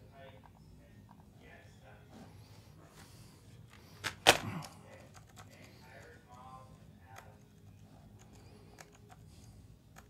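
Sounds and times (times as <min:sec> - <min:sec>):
low room background: 0:00.0 - 0:10.0.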